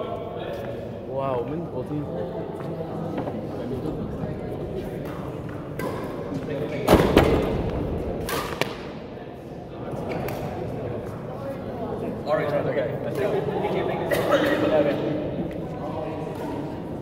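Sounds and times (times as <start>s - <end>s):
murmur of voices: 0.0s - 17.0s
racket striking shuttlecock: 8.2s - 8.9s.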